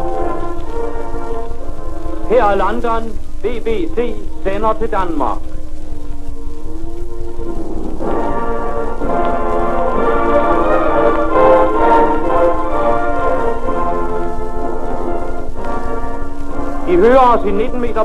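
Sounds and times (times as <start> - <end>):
orchestral chords on old record: 0.0 - 18.0
record hiss and surface noise: 0.0 - 18.0.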